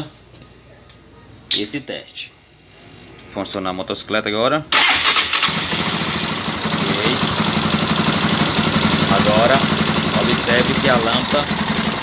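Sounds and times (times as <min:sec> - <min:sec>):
motorcycle engine starting and idling: 0:04.7 - 0:12.0.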